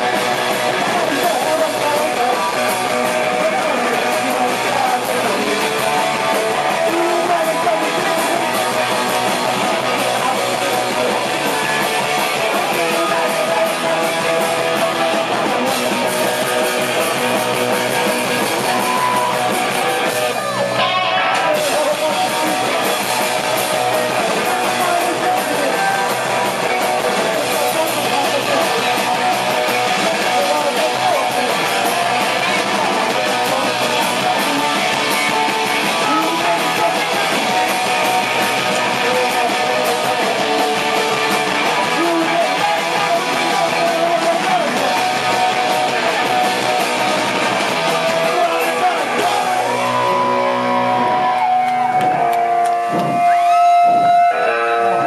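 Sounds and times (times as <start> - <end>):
live rock band playing: 0.0 - 55.0
strummed electric guitars: 0.0 - 55.0.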